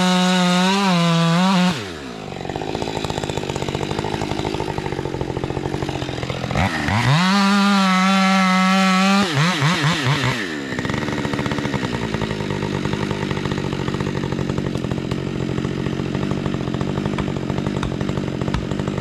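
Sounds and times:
chainsaw idling and revving: 0:00.0 - 0:19.0.

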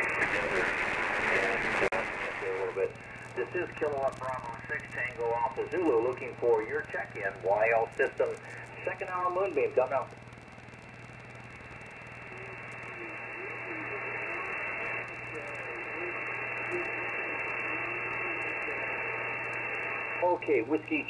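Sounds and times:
low steady hum: 0:00.0 - 0:21.0
radio static hiss: 0:00.0 - 0:21.0.

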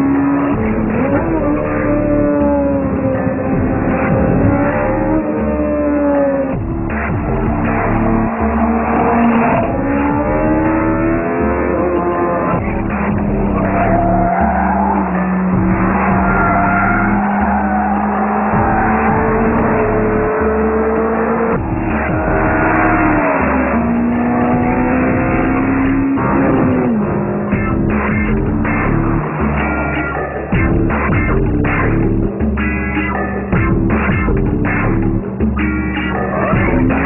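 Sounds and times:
car engine revving hard: 0:00.0 - 0:35.4, 0:36.2 - 0:37.0.

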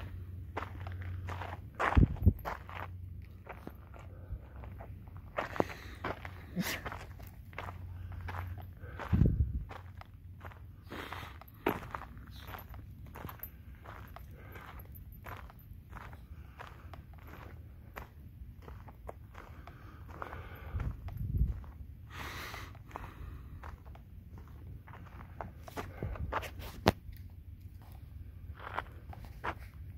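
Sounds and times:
footsteps on dirt trail: 0:00.0 - 0:29.9.

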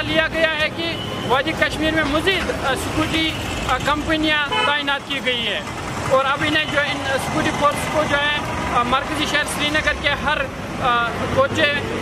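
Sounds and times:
man speaking into a microphone: 0:00.0 - 0:12.0
street traffic rumble: 0:00.0 - 0:12.0.

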